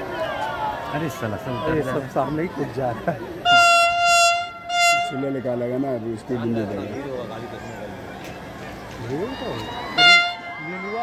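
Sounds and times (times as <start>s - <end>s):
locomotive horn blasts: 3.4s - 5.5s, 10.0s - 10.6s.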